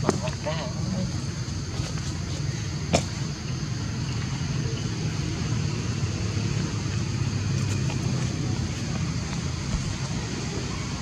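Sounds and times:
low outdoor rumble: 0:00.0 - 0:11.0.

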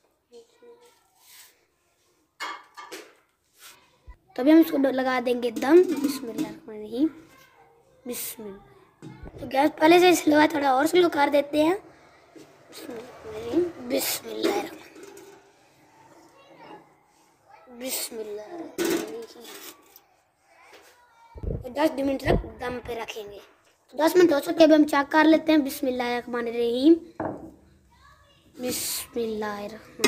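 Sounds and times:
soft rub of mug: 0:00.8 - 0:02.2
mug and pot clattering: 0:02.4 - 0:03.2, 0:05.6 - 0:06.6, 0:14.3 - 0:15.6, 0:18.8 - 0:19.4.

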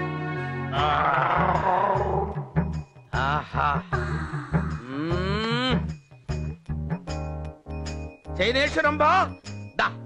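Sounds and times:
background music with low beat: 0:00.0 - 0:10.0
man wailing: 0:00.8 - 0:02.4.

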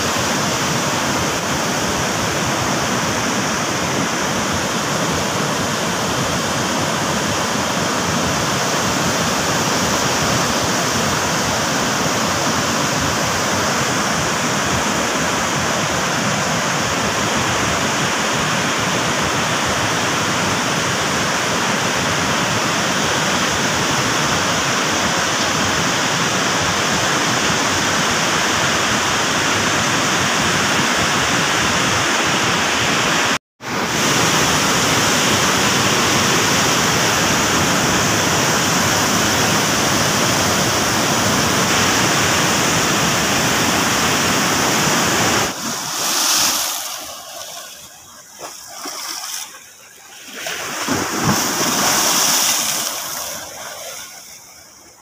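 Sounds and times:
roar of rushing floodwater: 0:00.0 - 0:55.0.

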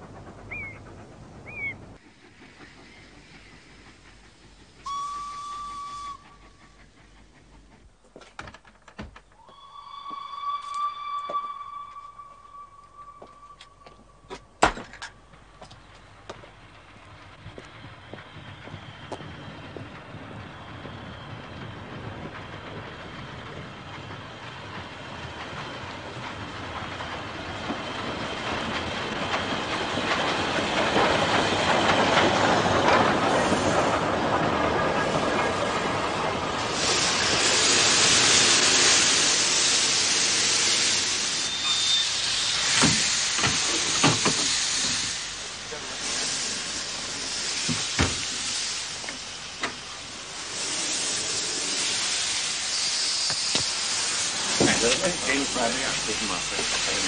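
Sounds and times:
steam train running: 0:00.0 - 0:57.0
hiss of released steam: 0:02.0 - 0:07.6, 0:35.0 - 0:57.0.

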